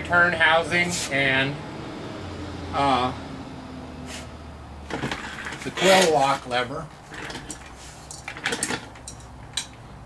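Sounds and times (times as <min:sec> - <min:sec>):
metal wrench clinking: 0:07.1 - 0:09.8.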